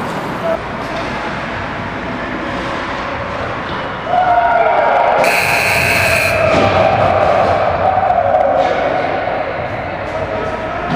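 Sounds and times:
buzzer long steady tone: 5.2 - 6.4
brief shrill sound: 5.2 - 6.5.

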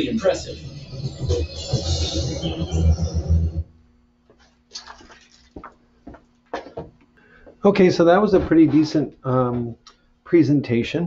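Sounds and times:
bass-heavy music through tv speaker: 0.0 - 3.7
steady low hum: 0.0 - 4.7.

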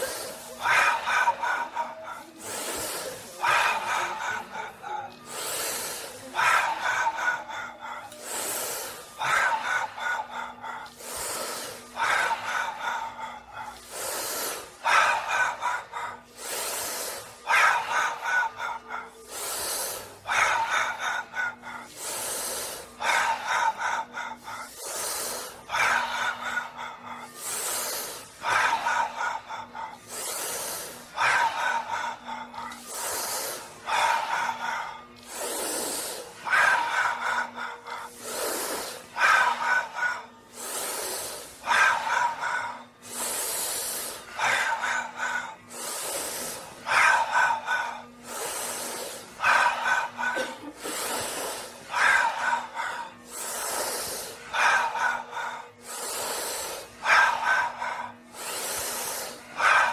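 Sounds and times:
breathy voiced sound: 0.0 - 59.9
sharp hissing breath: 0.0 - 59.9.

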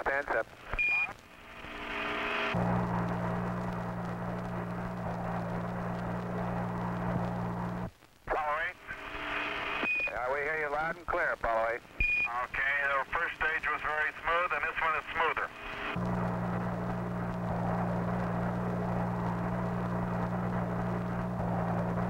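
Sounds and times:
radio voice: 0.0 - 0.6, 8.3 - 9.0, 10.1 - 15.6
low hum with hiss: 0.0 - 22.0.

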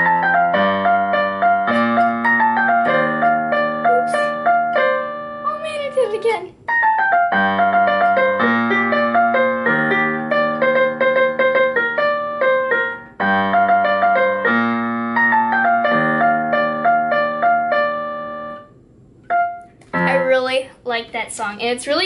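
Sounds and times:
electronic keyboard playing: 0.0 - 20.5.

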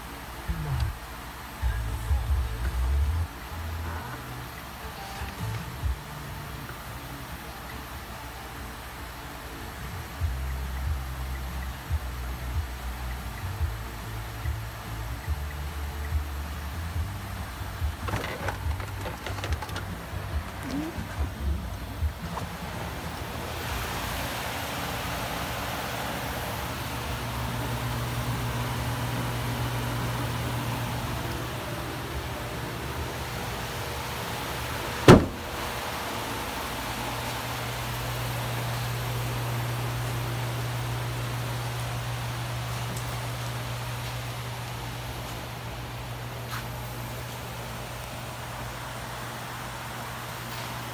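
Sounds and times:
engine idling: 0.0 - 50.9
sharp knock: 35.1 - 35.4.

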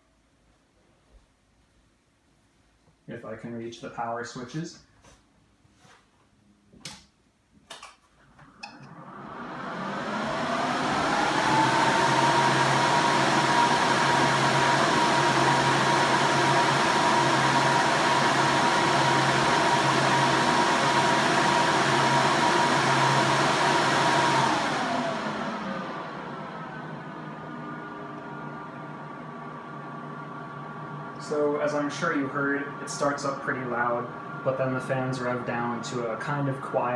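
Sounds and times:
cooling fans rushing: 8.4 - 36.9
steady whine: 8.6 - 36.9.

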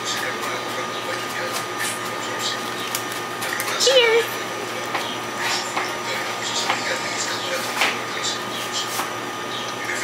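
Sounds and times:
appliance hum: 0.0 - 10.0.

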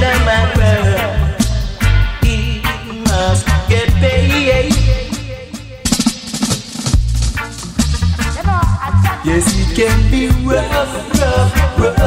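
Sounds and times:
bass line: 0.0 - 12.0
reggae drums: 0.0 - 12.0
snare drum roll: 5.9 - 7.4.

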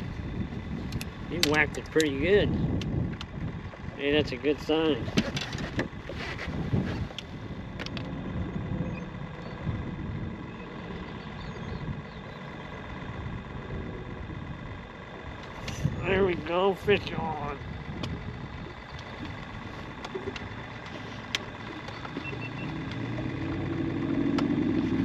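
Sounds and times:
boat motor droning: 0.0 - 25.0.

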